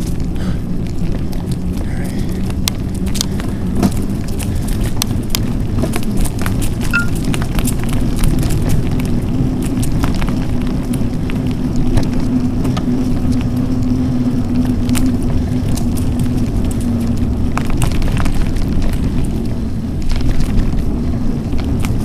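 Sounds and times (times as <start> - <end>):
bike clicks and rattles: 0.0 - 22.0
tyres rumbling on gravel: 0.0 - 22.0.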